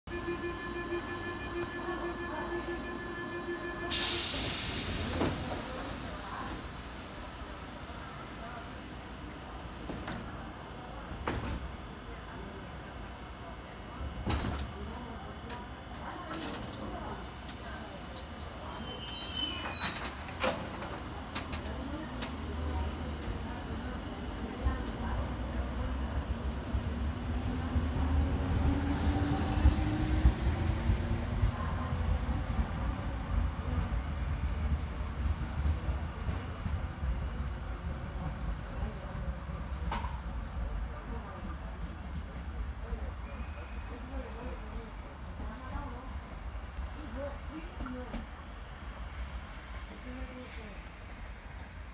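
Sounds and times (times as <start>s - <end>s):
train wheels rumbling on track: 3.9s - 12.2s, 13.8s - 43.3s
loud clatter with squealing: 18.6s - 21.6s.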